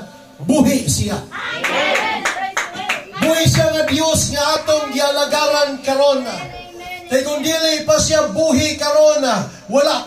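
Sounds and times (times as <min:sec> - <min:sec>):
voices calling out: 0:01.3 - 0:07.7
people clapping: 0:01.4 - 0:04.3.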